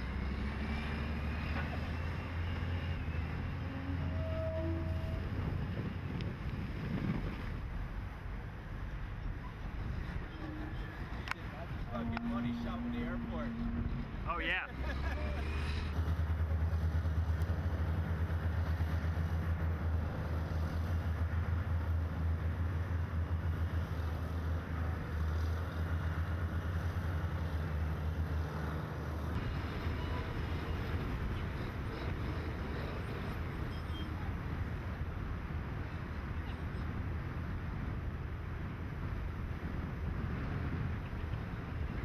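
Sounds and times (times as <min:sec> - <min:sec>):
diesel engine droning: 0:00.0 - 0:42.0.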